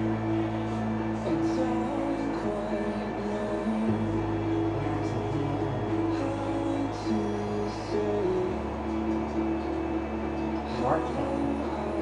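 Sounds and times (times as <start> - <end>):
music on car radio: 0.0 - 12.0.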